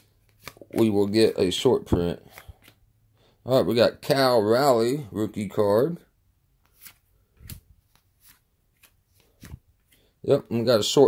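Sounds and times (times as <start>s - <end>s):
cards snapping and sliding: 0.2s - 0.9s, 6.6s - 10.0s.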